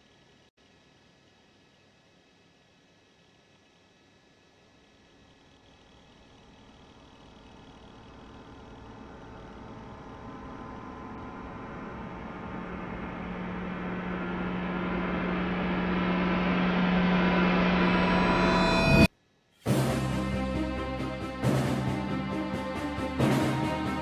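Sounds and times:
low steady hum: 0:00.0 - 0:19.1
hissing riser with steady tones: 0:05.9 - 0:19.1.

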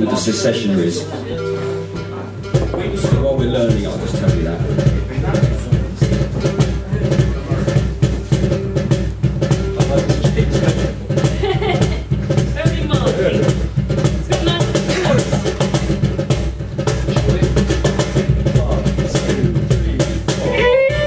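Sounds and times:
cajon beat: 0:00.0 - 0:21.0
mandolin: 0:00.0 - 0:21.0
strummed guitars: 0:00.0 - 0:21.0
fiddle playing: 0:20.3 - 0:21.0.

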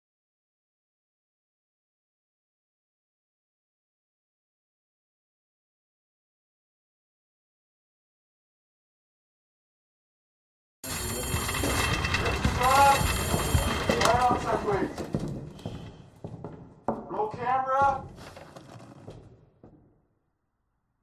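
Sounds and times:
voices: 0:10.9 - 0:15.1
background noise: 0:11.0 - 0:21.0.

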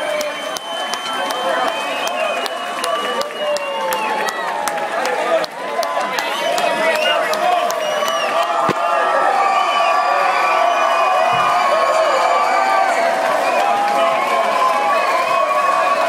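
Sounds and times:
hand claps: 0:00.0 - 0:09.0
crowd shouting and whooping: 0:00.0 - 0:16.0.

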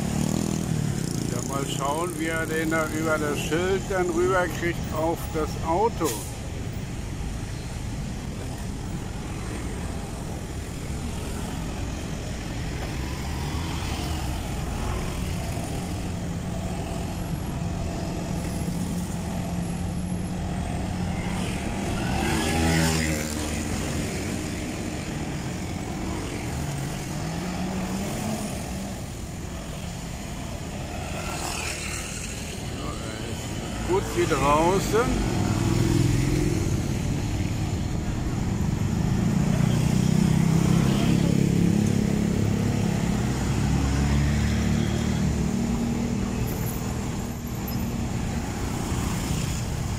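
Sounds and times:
cars driving past: 0:00.0 - 0:49.9
engine revving: 0:21.3 - 0:24.8.

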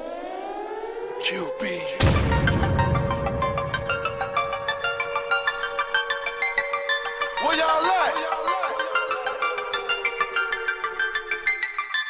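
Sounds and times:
siren wailing tone: 0:00.0 - 0:12.0.

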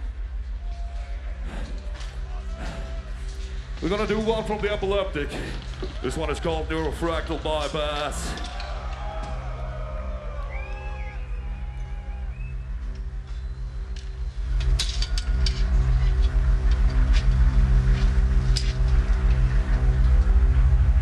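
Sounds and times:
low droning intro: 0:00.0 - 0:21.0.

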